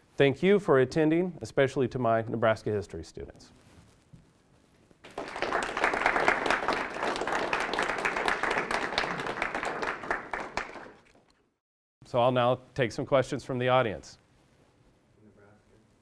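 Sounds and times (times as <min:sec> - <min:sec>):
small audience applauding: 0:05.0 - 0:11.4.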